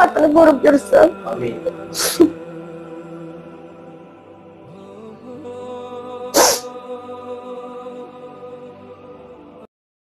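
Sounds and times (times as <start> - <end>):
soft background music: 0.0 - 9.7
crying woman sniffing: 1.9 - 2.4, 6.4 - 6.7.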